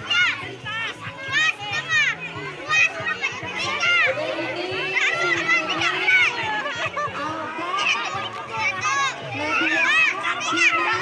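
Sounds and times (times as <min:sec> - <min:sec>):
children shouting excitedly: 0:00.0 - 0:11.0.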